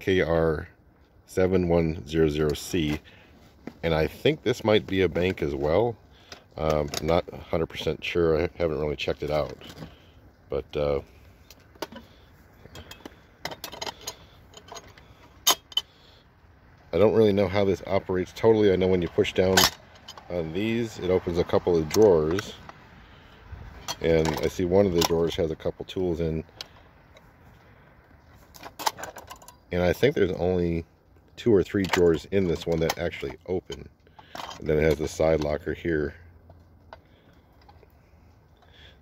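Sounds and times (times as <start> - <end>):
light metal clicks and clinks: 11.4 - 16.0
small metal drawers clicking: 11.6 - 15.9, 19.0 - 22.8, 28.5 - 30.1, 31.6 - 35.6.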